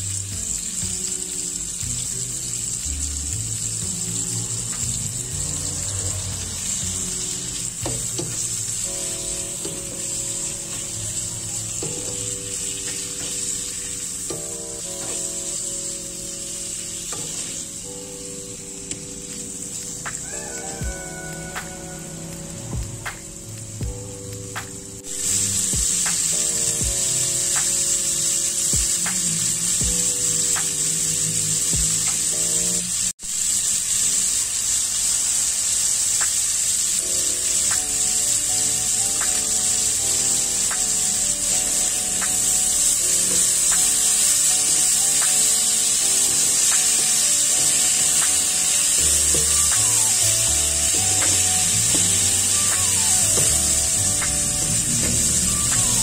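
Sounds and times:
background music with beat: 0:00.0 - 0:33.1, 0:37.0 - 0:56.0
meat sizzling in frying pan: 0:00.0 - 0:56.0.

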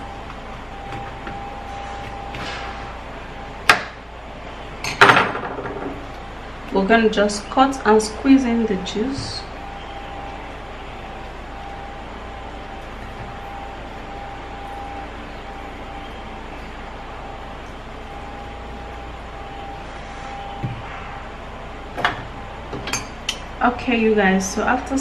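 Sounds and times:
background hiss and hum: 0:00.0 - 0:25.0.

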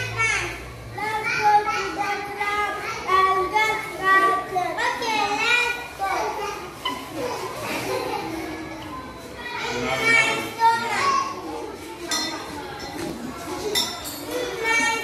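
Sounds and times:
children speaking: 0:00.0 - 0:15.0.

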